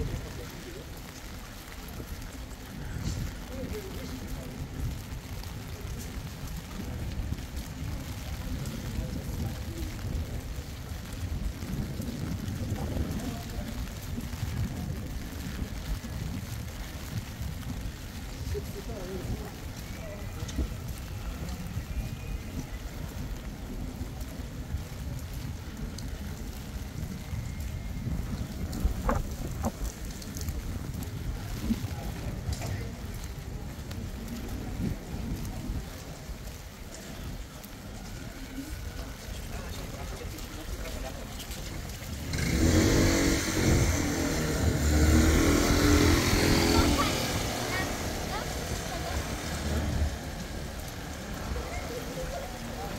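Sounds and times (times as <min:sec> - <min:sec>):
rain on a wet street: 0:00.0 - 0:52.9
wind buffeting microphone: 0:00.0 - 0:52.9.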